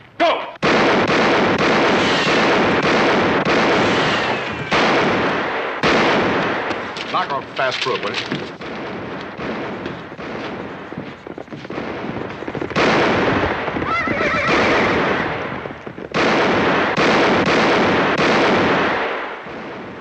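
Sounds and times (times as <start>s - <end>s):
loud noisy commotion: 12.2s - 15.9s
horse whinnying: 13.8s - 15.0s.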